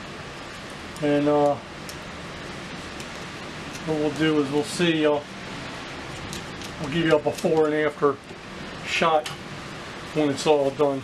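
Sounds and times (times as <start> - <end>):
man speaking: 1.0 - 1.6, 3.8 - 5.3, 6.8 - 8.2, 8.9 - 9.3, 10.2 - 11.0.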